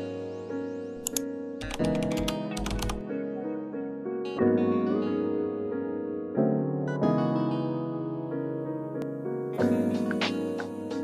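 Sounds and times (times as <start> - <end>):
music with sustained notes: 0.0 - 11.0
keyboard typing clicks: 1.0 - 3.0.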